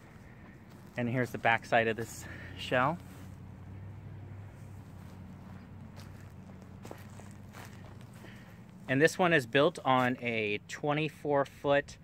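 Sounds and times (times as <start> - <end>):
soft footsteps: 0.0 - 10.5
steady low hum: 0.0 - 10.8.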